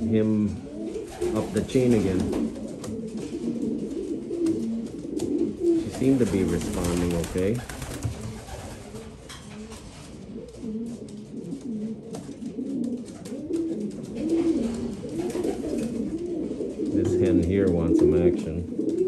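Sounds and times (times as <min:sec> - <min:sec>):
pigeons cooing: 0:00.0 - 0:19.0.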